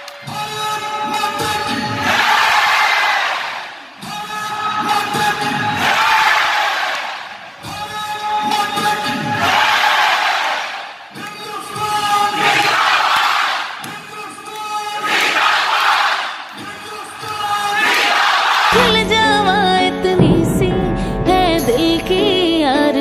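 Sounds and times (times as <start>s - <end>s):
crowd roaring: 0.0s - 18.8s
man shouting over loudspeakers: 0.2s - 2.2s, 4.0s - 6.2s, 7.6s - 9.8s, 11.2s - 12.8s, 16.6s - 18.2s.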